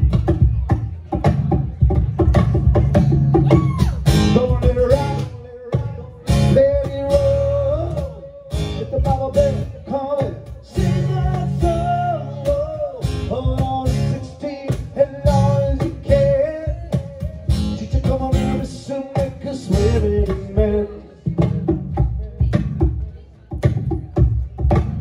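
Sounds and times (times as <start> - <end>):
acoustic guitar strumming chords: 4.0 - 22.3.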